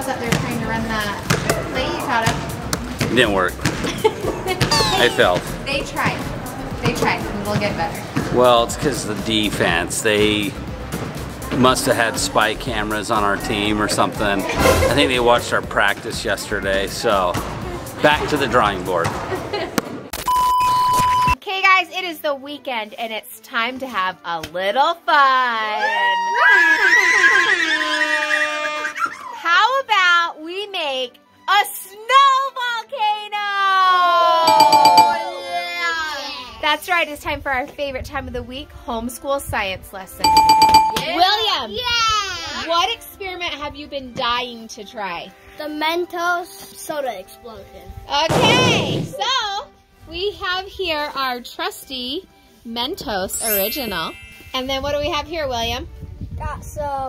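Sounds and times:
basketball bouncing on gym floor: 0:00.3 - 0:00.6, 0:01.3 - 0:01.6
people's voices: 0:03.2 - 0:10.3.

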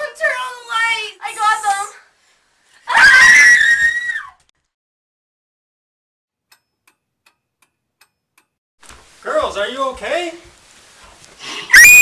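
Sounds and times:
shrill high-pitched scream: 0:02.9 - 0:04.4, 0:11.7 - 0:12.0.

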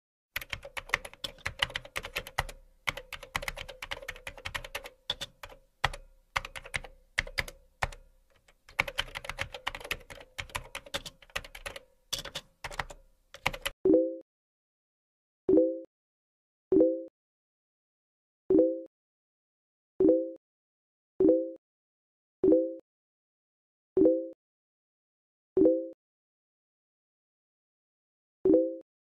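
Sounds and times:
computer keyboard typing: 0:00.4 - 0:13.8.

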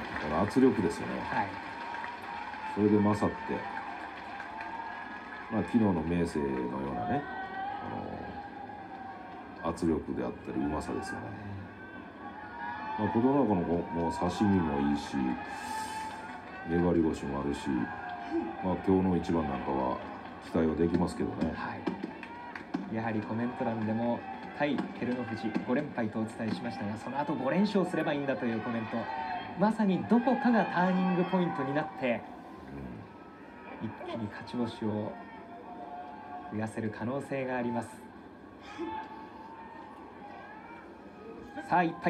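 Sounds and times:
man commenting on television: 0:00.0 - 0:01.6, 0:13.0 - 0:18.0, 0:18.6 - 0:22.0, 0:22.9 - 0:33.1.

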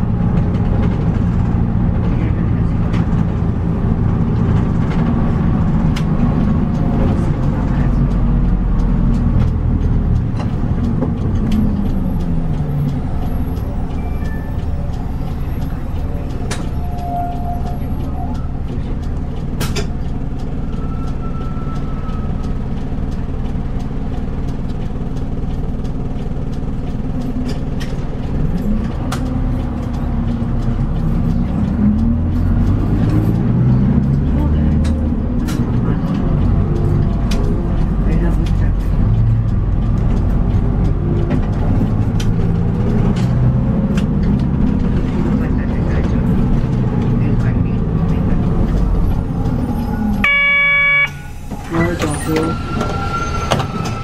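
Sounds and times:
bus diesel engine accelerating: 0:00.0 - 0:54.0.

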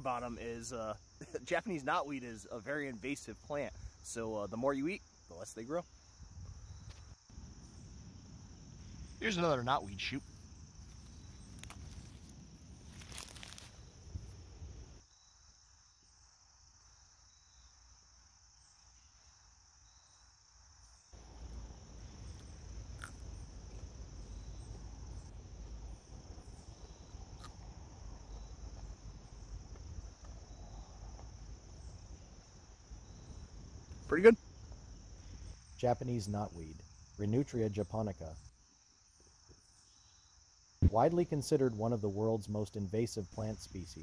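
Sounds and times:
plant shoot snapping: 0:11.5 - 0:12.3
chewing: 0:22.9 - 0:23.8, 0:27.4 - 0:27.7.

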